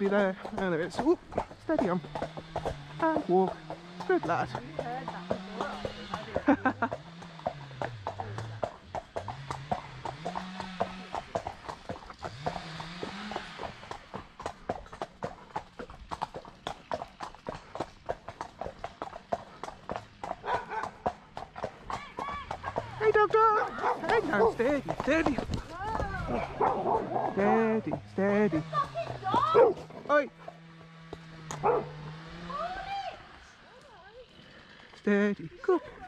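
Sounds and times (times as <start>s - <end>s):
distant chainsaw revving: 0.0s - 15.8s, 22.5s - 36.0s
horse hooves clip-clopping on pavement: 0.0s - 36.0s.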